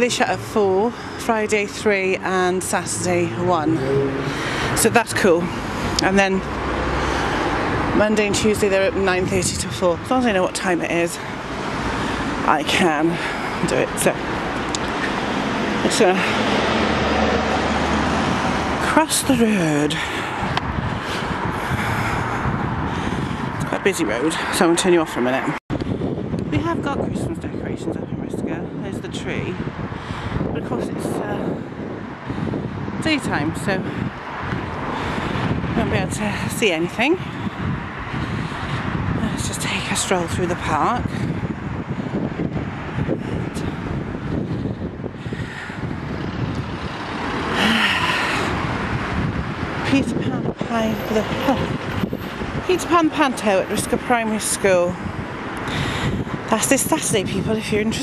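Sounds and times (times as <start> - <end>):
car passing close: 0.0 - 9.4, 10.8 - 21.6, 34.0 - 54.2
road traffic rumble: 0.0 - 58.0.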